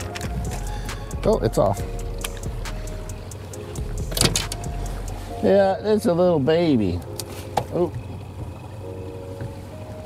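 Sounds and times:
outboard boat motor humming: 0:00.0 - 0:10.0.

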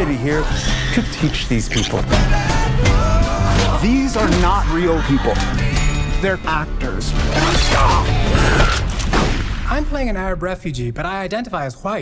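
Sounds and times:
mechanical creaking and screeching: 0:00.1 - 0:04.0, 0:07.2 - 0:09.1.

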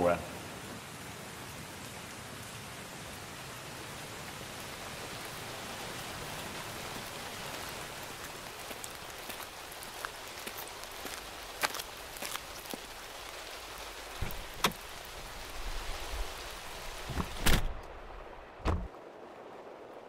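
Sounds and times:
steady rain falling: 0:00.0 - 0:20.0.

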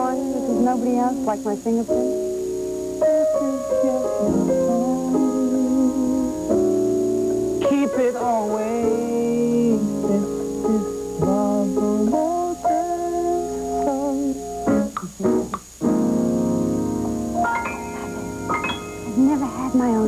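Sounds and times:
piano improvised melody: 0:00.0 - 0:20.0.

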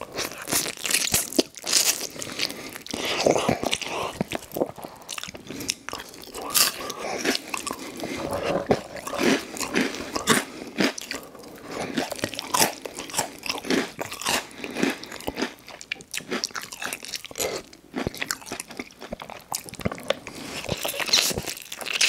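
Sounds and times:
chewing crunchy food: 0:00.0 - 0:22.0.

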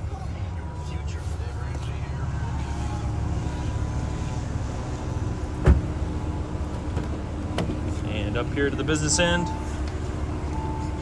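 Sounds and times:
steady low rumble: 0:00.0 - 0:11.0
car door shutting: 0:05.5 - 0:06.0, 0:06.7 - 0:08.0.

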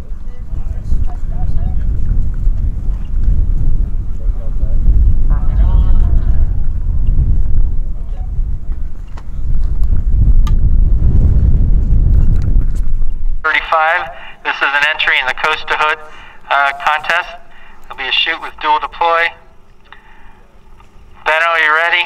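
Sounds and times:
wind buffeting microphone: 0:00.0 - 0:14.0
man announcing: 0:13.4 - 0:19.6, 0:21.2 - 0:22.0
faint voices: 0:13.5 - 0:22.0.

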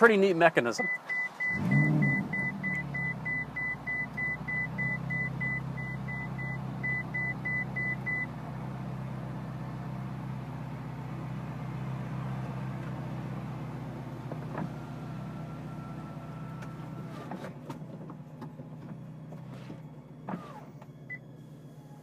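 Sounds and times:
short warning beeps: 0:00.8 - 0:08.3.

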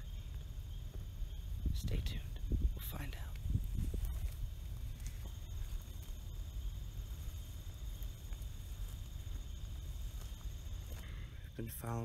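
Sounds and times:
insect trill: 0:00.0 - 0:12.0
microphone buffeting: 0:01.6 - 0:06.0
footsteps through tall grass: 0:03.4 - 0:11.3.

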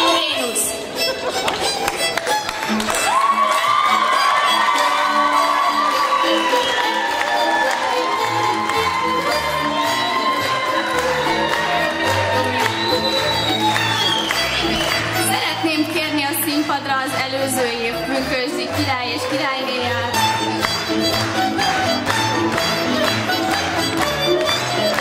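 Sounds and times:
fiddle holding long notes: 0:00.0 - 0:25.0
crowd cheering and clapping: 0:00.9 - 0:25.0.

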